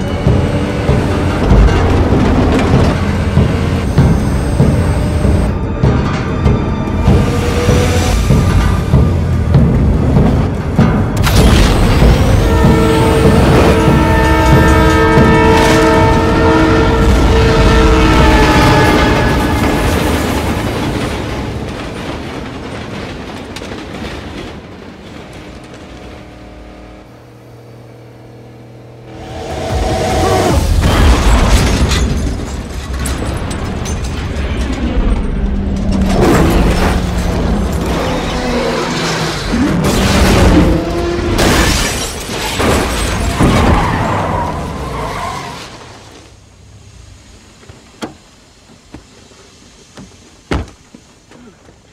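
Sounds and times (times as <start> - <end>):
racing car engines: 0.0 - 21.8, 25.0 - 47.0
film score music: 0.0 - 41.4
train horn chord: 12.0 - 20.2.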